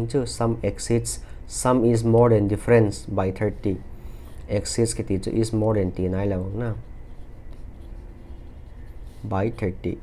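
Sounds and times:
pen scratching on paper: 6.3s - 10.0s.

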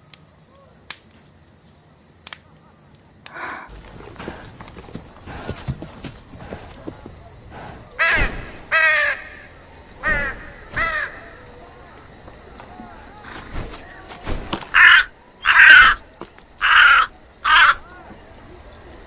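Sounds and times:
crow cawing: 7.5s - 11.5s, 14.7s - 18.0s.

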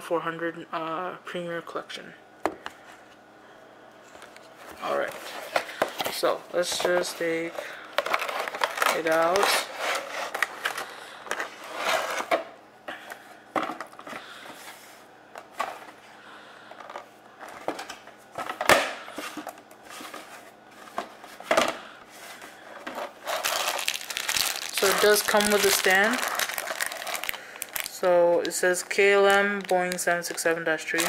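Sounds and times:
cardboard and plastic rustling: 4.0s - 16.1s, 16.7s - 31.0s
plastic crinkling: 4.9s - 12.3s, 22.5s - 31.0s.

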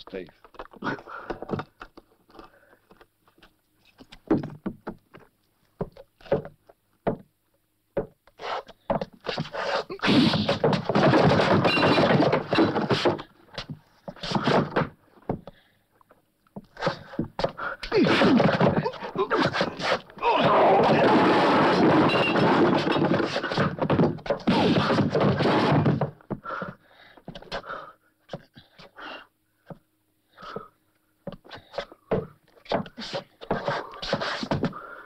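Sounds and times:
thuds of blows and bodies: 8.9s - 15.4s, 16.6s - 26.5s
chair knocking and scraping: 10.3s - 13.3s, 18.2s - 26.2s.

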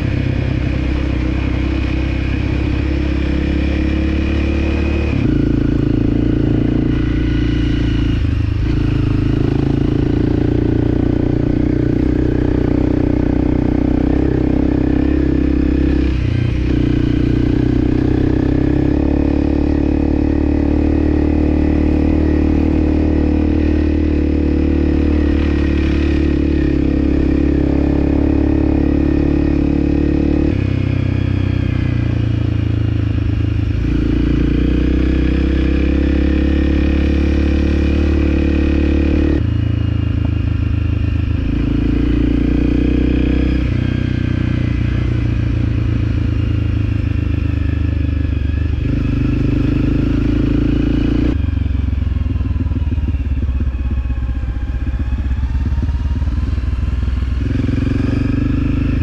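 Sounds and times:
motorcycle engine running: 0.0s - 59.0s.

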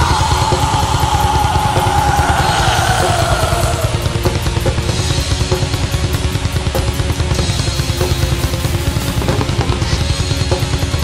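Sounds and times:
distorted metal band: 0.0s - 11.0s
fast drumming: 0.0s - 11.0s.

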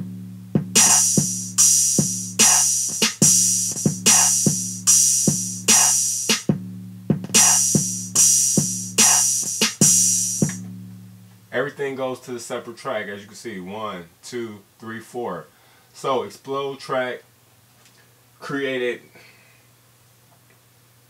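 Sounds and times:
low bass tone: 0.0s - 2.5s, 6.5s - 9.0s, 9.9s - 11.6s
hip-hop drum loop: 0.0s - 10.6s.

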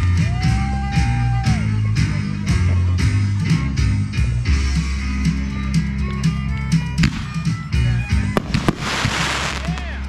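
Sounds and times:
country-rock music: 0.0s - 10.0s
fireworks reports and crackle: 8.4s - 10.0s.

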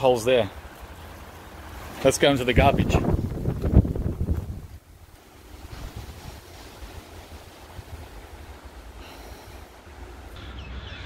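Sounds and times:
gusty wind buffeting microphone: 0.6s - 11.0s.

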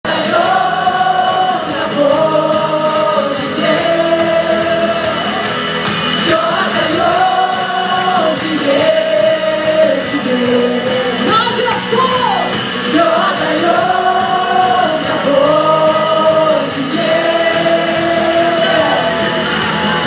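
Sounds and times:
musical accompaniment: 0.0s - 20.0s
people singing worship song: 0.1s - 11.6s, 12.4s - 20.0s.

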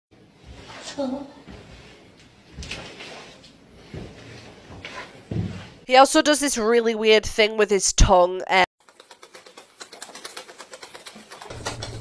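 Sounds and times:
wet tongue clicks: 8.8s - 11.9s.

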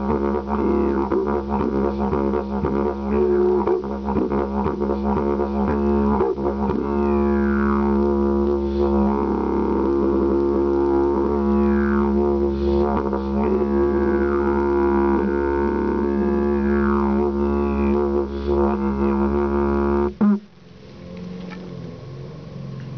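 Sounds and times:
didgeridoo drone: 0.0s - 22.9s
low hum: 0.0s - 22.9s.

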